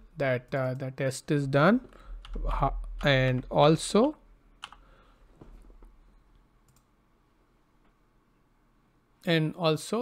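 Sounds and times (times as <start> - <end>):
computer click: 6.6 - 6.9.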